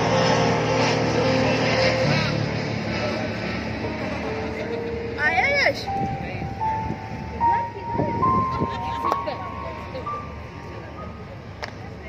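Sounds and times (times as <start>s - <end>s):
distant live concert music: 0.0s - 12.0s.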